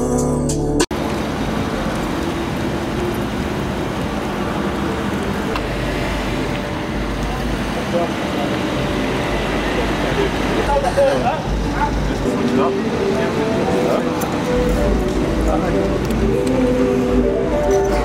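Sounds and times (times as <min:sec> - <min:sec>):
car engine and tyres rumbling: 0:00.9 - 0:18.0
traffic noise: 0:00.9 - 0:18.0
voices: 0:01.3 - 0:18.0.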